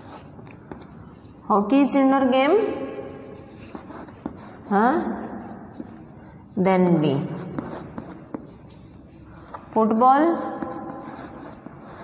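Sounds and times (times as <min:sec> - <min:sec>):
chalk tapping and scratching: 0:00.0 - 0:01.4, 0:03.1 - 0:12.0.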